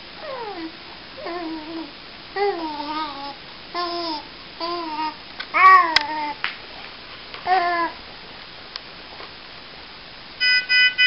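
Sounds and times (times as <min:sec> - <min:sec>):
baby cooing: 0:00.2 - 0:06.4.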